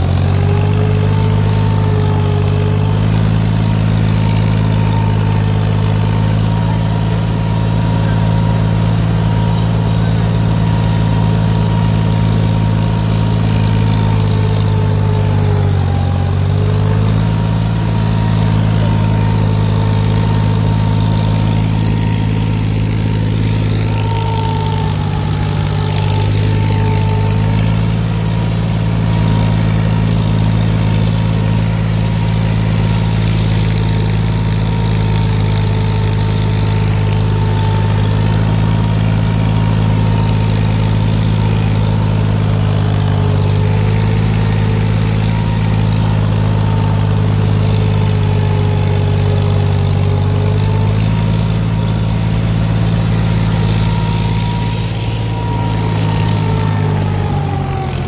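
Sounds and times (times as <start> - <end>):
diesel tractor engines running: 0.0 - 58.0.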